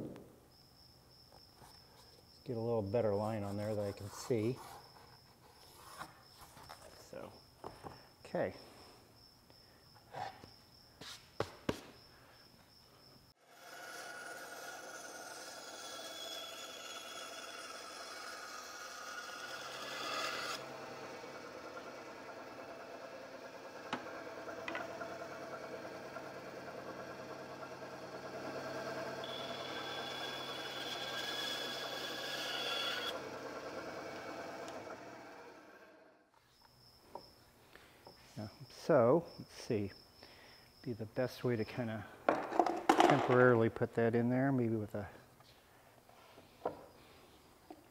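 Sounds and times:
bandsaw cutting wood: 0:13.4 - 0:36.2.

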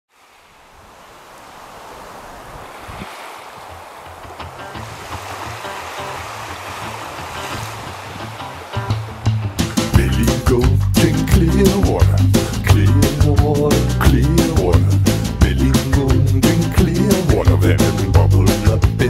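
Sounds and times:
wind: 0:00.1 - 0:10.0
surf washing on a beach: 0:00.1 - 0:10.6
instrumental song with bass line: 0:08.3 - 0:19.0.

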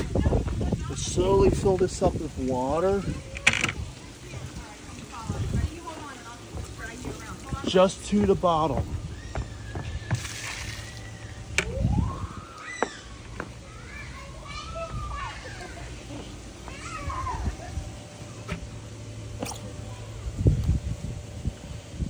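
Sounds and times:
low rumbling thuds: 0:05.2 - 0:10.3.

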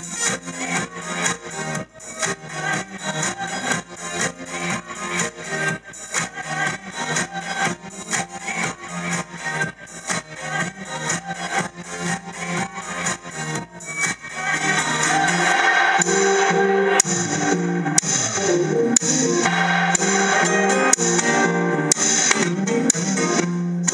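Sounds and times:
guitar playing: 0:16.0 - 0:23.3.

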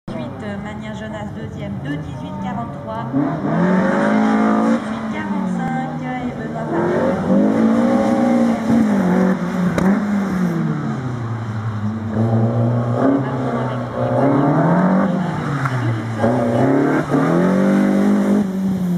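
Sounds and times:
car engine pulling hard: 0:02.5 - 0:18.9.

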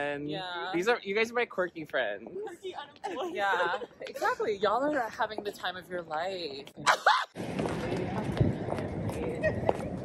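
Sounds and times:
traffic hum: 0:00.8 - 0:10.0
footsteps on pavement: 0:04.0 - 0:06.8, 0:07.4 - 0:10.0.

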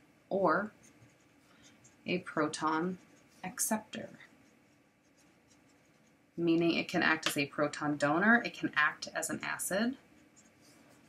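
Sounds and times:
marker scratching on paper: 0:00.7 - 0:06.6, 0:10.0 - 0:11.0.

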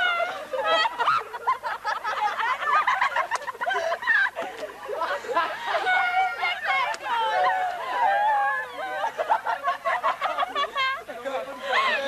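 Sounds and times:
teenagers warbling vocalising: 0:04.2 - 0:12.0.

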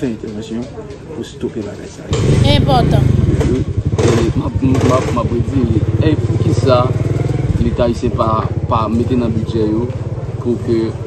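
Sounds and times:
men talking: 0:03.4 - 0:07.0, 0:07.6 - 0:09.9.

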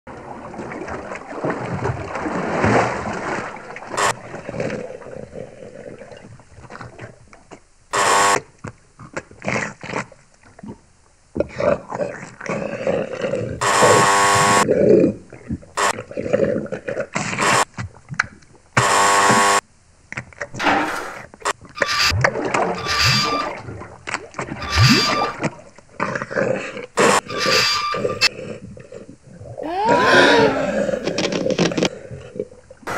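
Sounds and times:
loud buzzing tone: 0:04.0 - 0:04.2, 0:07.9 - 0:08.4, 0:13.6 - 0:14.6, 0:18.8 - 0:19.6
cartoon creaks and rustles: 0:20.4 - 0:23.6, 0:24.5 - 0:25.4, 0:27.0 - 0:28.3, 0:29.6 - 0:32.0
rising pitched cry: 0:29.6 - 0:31.3
animal-like growling: 0:29.6 - 0:31.9.

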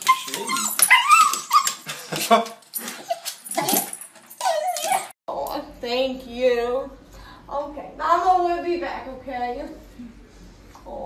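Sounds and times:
dog whining: 0:00.0 - 0:01.9, 0:02.8 - 0:05.2.

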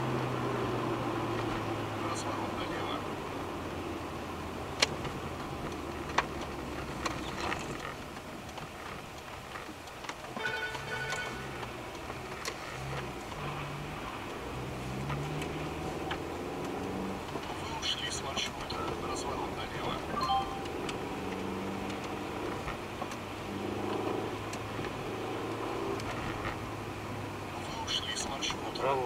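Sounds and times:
car engine and road noise: 0:00.0 - 0:29.0.

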